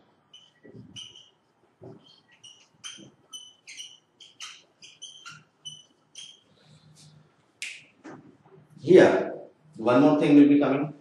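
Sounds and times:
marker squeaking on whiteboard: 0:00.3 - 0:08.7.

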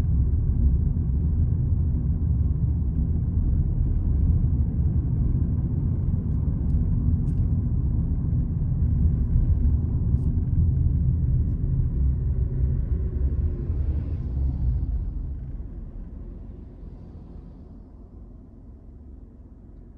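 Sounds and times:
car cabin road and engine rumble: 0:00.0 - 0:19.9.

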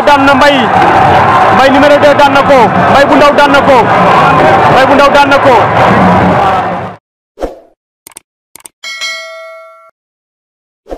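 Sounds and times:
notification bell chime: 0:08.8 - 0:09.9.

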